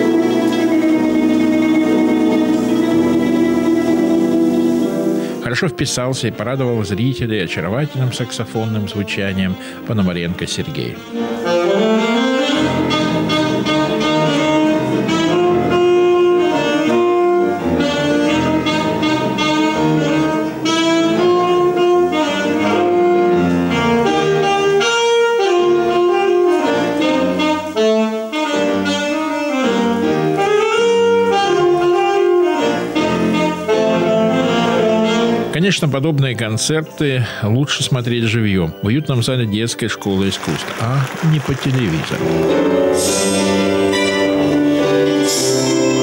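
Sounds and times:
alto saxophone melody: 0.0s - 35.6s, 40.4s - 46.0s
piano accompaniment: 0.0s - 46.0s.

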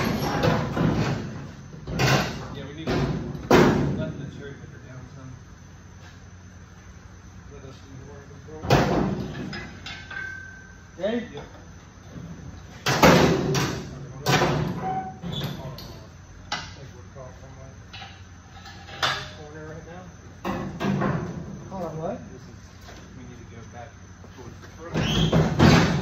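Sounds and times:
metal cab banging against chassis: 25.0s - 26.0s.

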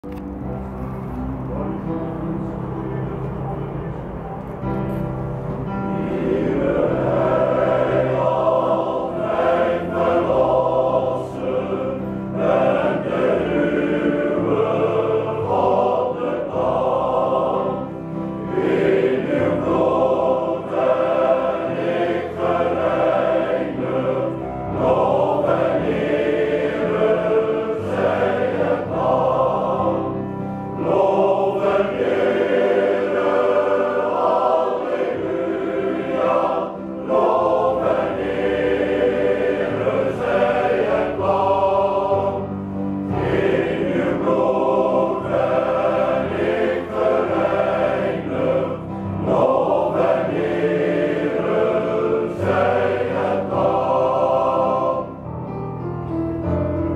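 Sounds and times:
male voice choir singing: 5.8s - 55.2s.

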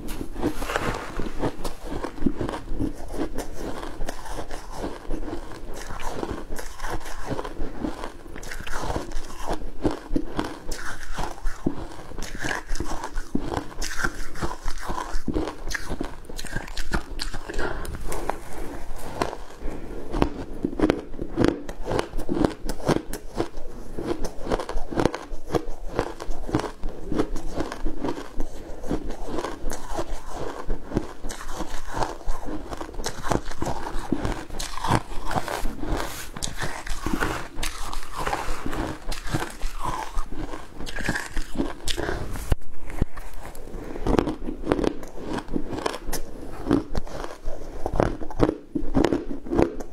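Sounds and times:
crushed ice being chewed: 0.0s - 49.9s.

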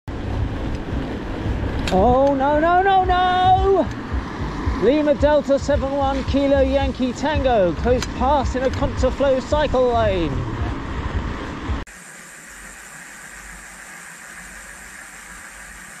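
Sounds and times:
road noise: 0.0s - 16.0s
low rumble: 0.1s - 11.9s
steady hiss: 11.9s - 16.0s.

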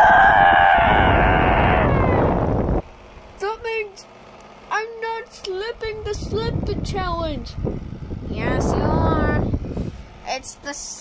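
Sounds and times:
person screaming high-pitched: 0.0s - 2.5s.

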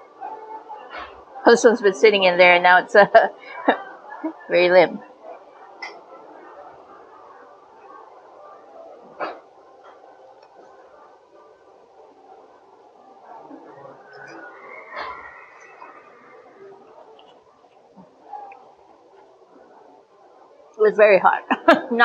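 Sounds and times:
faint background murmur: 0.0s - 22.0s.

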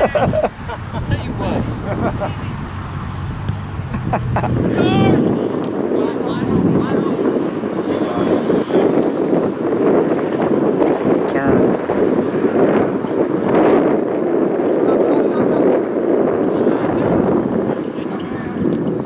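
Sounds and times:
wind buffeting microphone: 0.0s - 19.0s
people talking and shouting: 4.5s - 19.0s.

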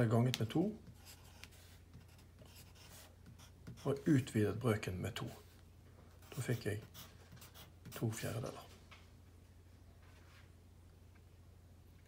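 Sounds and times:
pen scratching while writing: 0.8s - 4.0s, 6.2s - 8.0s.

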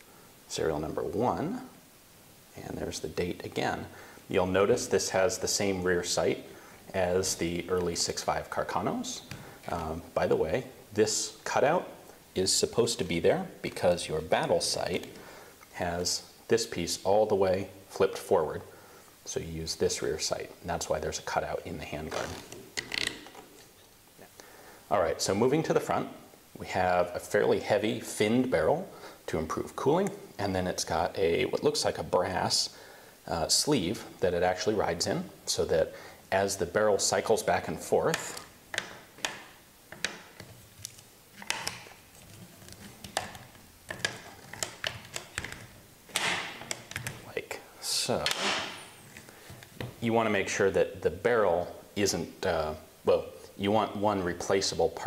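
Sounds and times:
rustling: 37.0s - 50.1s.

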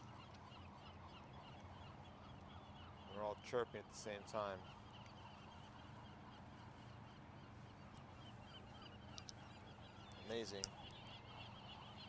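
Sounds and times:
flock of birds chirping: 0.0s - 12.0s.

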